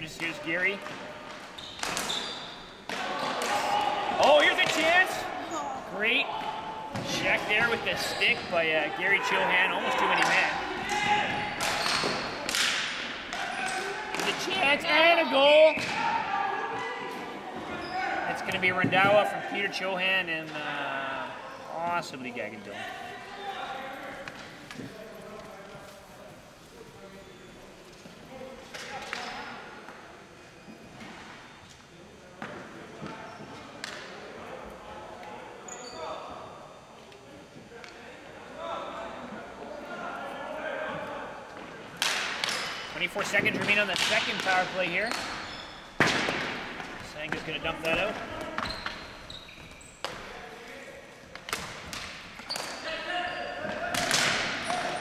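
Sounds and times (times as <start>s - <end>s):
hockey sticks and ball clattering: 0.1s - 5.0s, 9.2s - 15.0s, 41.5s - 55.0s.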